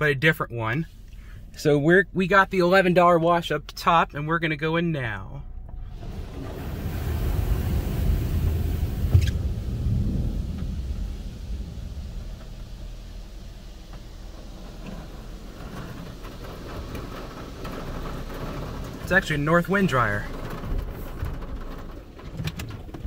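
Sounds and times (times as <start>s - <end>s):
car cabin low rumble: 0.0s - 23.0s.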